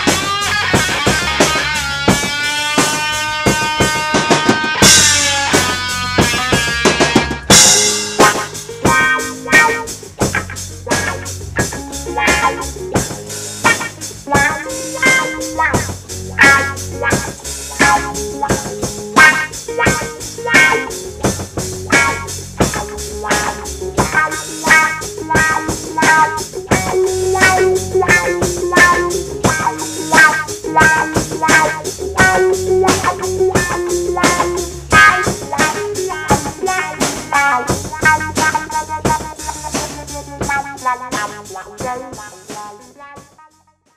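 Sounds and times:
drum kit steady beat: 0.0s - 43.6s
electric guitar with wah pedal: 0.0s - 43.8s.

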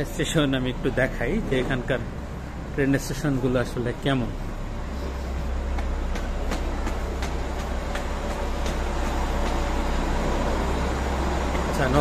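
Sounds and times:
low rumble of station hall: 0.0s - 12.0s
footsteps on stone stairs: 5.4s - 10.6s.

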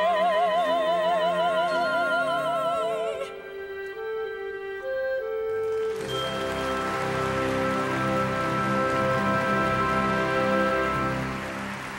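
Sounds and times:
audience applause: 5.5s - 11.9s.

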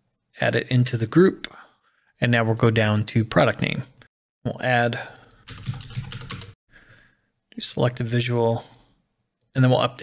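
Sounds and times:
typing on computer keyboard: 5.1s - 6.6s.

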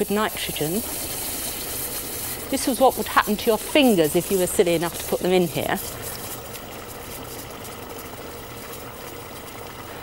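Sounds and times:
liquid nitrogen bubbling hiss: 0.0s - 10.0s.

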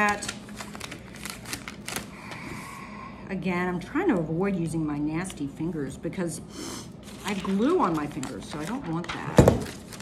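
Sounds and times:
paper crackling: 0.0s - 2.4s, 7.0s - 10.0s.

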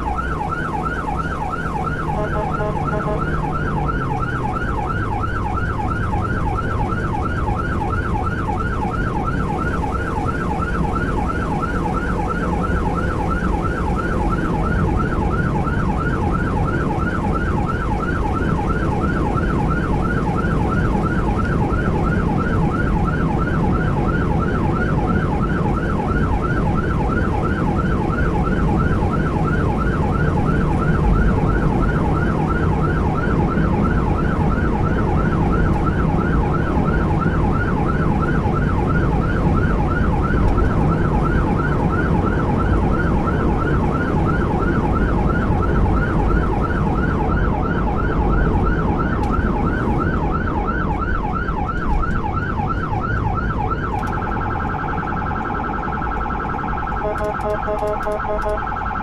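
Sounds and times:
emergency siren yelping: 0.0s - 59.0s
engine and road noise: 0.0s - 59.0s.

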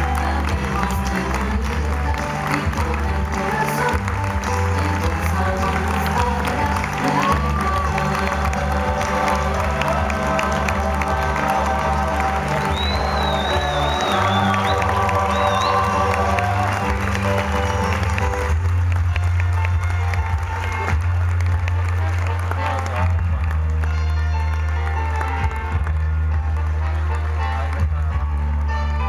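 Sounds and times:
audience applause and cheering: 0.0s - 29.0s
music with steady bass line: 0.0s - 29.0s.

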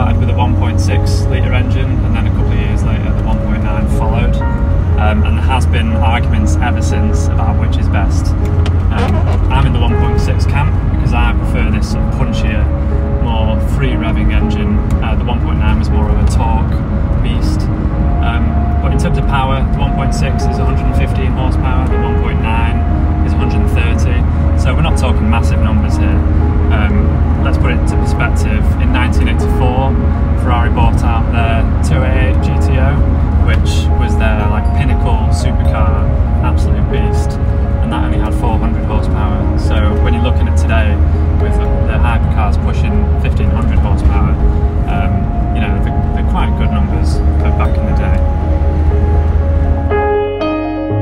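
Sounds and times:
background music: 0.0s - 51.0s
car engine droning: 0.0s - 51.0s
road noise: 0.0s - 51.0s.

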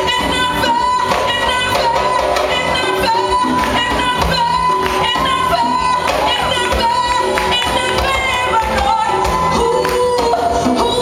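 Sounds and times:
congas played by hand: 0.0s - 11.0s
woman singing into a microphone: 0.0s - 11.0s.

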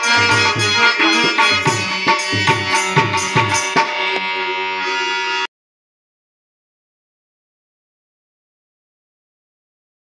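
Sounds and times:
harmonium chord: 0.0s - 5.5s.

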